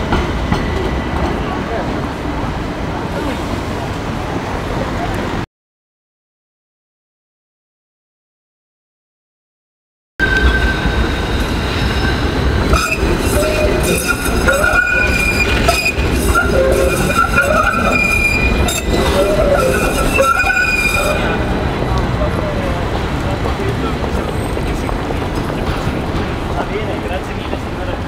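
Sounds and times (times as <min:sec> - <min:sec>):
tram rumbling: 0:00.0 - 0:05.5, 0:10.2 - 0:28.0
steel wheel squeal: 0:10.2 - 0:21.5.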